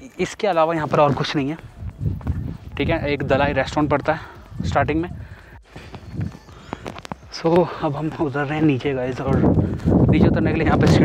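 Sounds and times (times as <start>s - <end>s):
footsteps on concrete: 0.9s - 10.8s.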